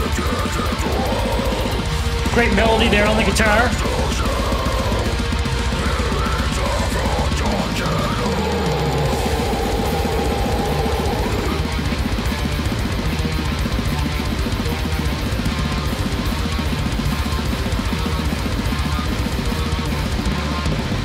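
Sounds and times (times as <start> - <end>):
dense steady drumming: 0.0 - 21.0
distorted guitars: 0.0 - 21.0.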